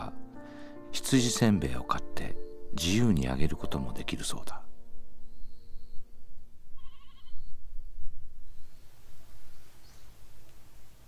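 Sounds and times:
low background noise: 1.4s - 11.0s
sheep bleating: 6.8s - 7.4s.

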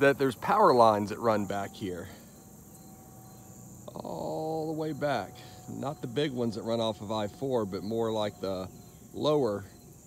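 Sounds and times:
high-pitched insect chirring: 0.0s - 10.0s.

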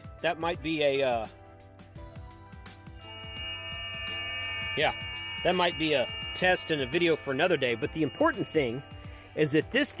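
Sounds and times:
overlapping steady radio tones: 3.0s - 9.8s.

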